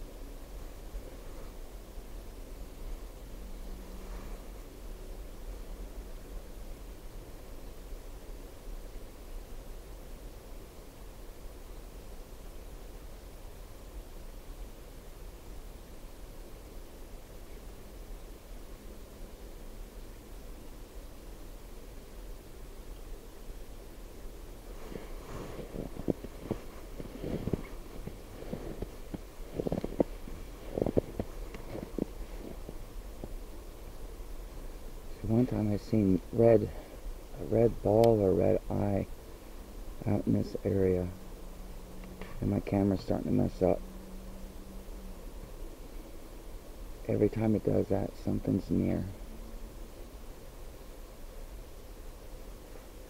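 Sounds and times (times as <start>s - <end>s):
faint low rumble: 20.1s - 51.0s
footsteps crunching in snow: 24.7s - 33.4s.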